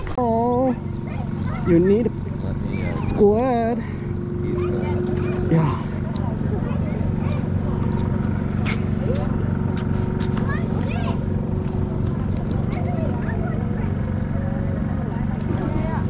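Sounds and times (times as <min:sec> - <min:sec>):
people talking: 0:00.0 - 0:09.4, 0:10.2 - 0:16.0
low mechanical hum: 0:00.0 - 0:16.0.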